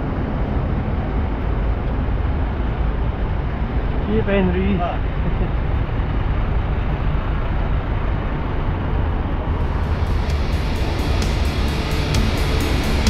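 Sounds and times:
fire truck engines rumbling: 0.0s - 13.0s
rock music: 9.6s - 13.0s.

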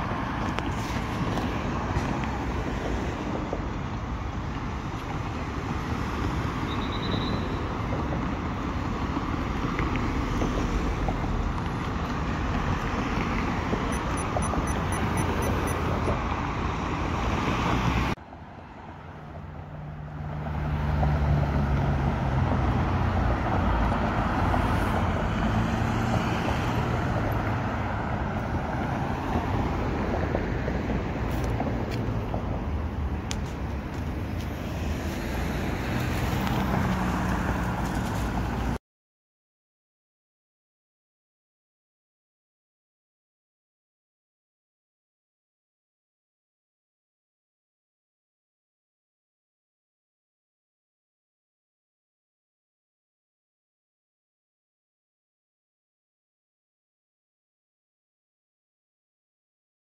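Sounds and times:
road traffic noise: 0.0s - 38.8s.

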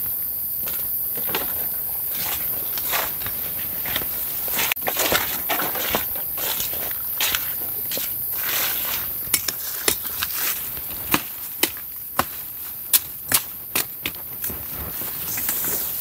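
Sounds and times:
steady high hiss: 0.0s - 16.0s.

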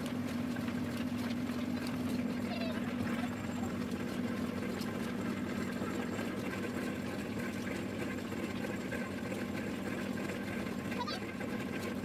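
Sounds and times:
oil expeller machine droning: 0.0s - 12.0s.

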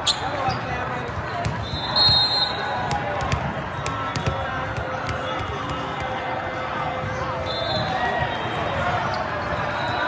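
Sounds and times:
crowd chatter: 0.0s - 10.0s
volleyballs struck and bouncing: 1.0s - 1.9s, 2.8s - 6.3s.

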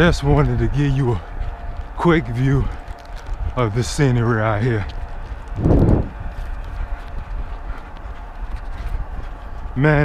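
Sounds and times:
running footfalls on asphalt: 0.0s - 10.0s
wind noise: 0.0s - 10.0s.

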